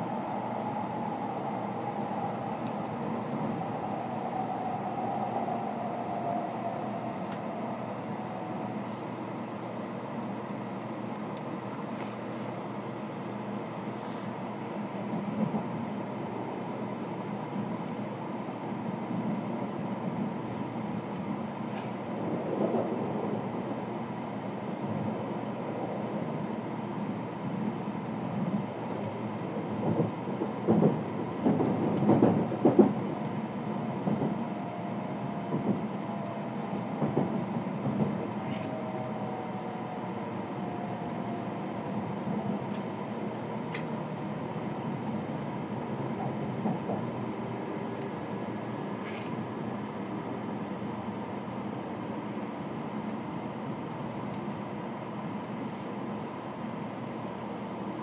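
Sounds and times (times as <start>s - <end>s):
train rumble and hiss: 0.0s - 58.0s.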